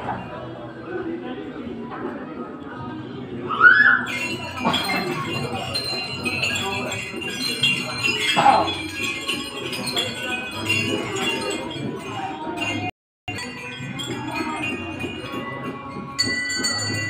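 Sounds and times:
clear bell tone: 0:04.1 - 0:17.0
temple bells and chimes ringing: 0:04.1 - 0:17.0.

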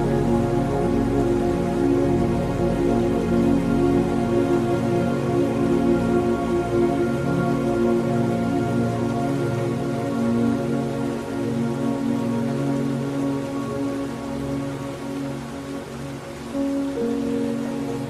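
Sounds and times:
rain-like hiss: 0:00.0 - 0:18.0
slow ambient music: 0:00.0 - 0:18.0.

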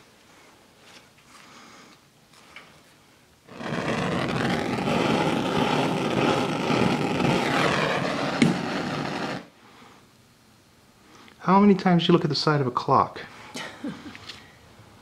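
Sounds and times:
electric blower running: 0:03.5 - 0:09.5.

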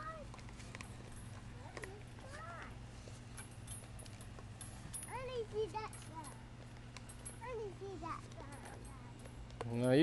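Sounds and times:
child exclaiming: 0:00.0 - 0:00.3, 0:01.6 - 0:02.8.

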